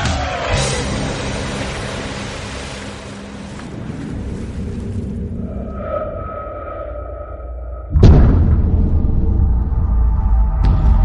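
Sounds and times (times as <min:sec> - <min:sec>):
water rushing and spraying: 0:00.0 - 0:05.8.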